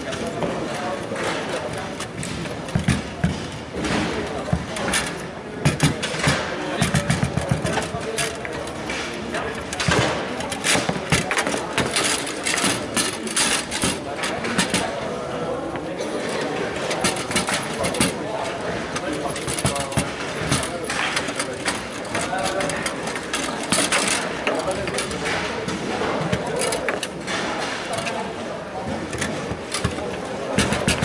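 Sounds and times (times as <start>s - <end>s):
murmur of voices: 0.0s - 31.0s.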